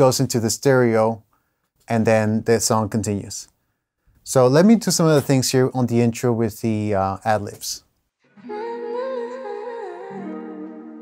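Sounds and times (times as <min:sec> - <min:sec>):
woman singing gliding notes: 0:08.4 - 0:11.0.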